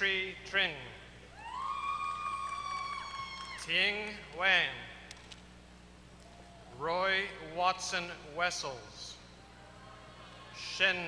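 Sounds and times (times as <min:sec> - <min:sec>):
audience high-pitched cheer: 0:01.3 - 0:03.7.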